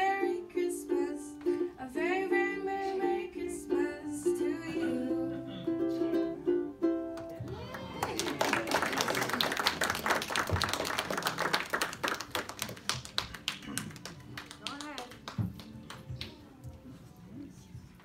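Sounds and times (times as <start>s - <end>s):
ukulele: 0.0s - 8.2s
audience applauding: 7.2s - 16.3s.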